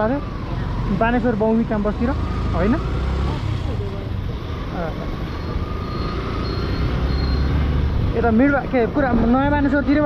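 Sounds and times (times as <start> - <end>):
motorcycle engine rumble: 0.0 - 10.0
road noise: 0.0 - 10.0.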